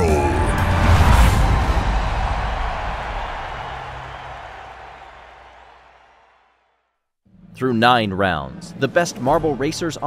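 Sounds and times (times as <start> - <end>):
loud noisy sound hit: 0.3 - 4.8.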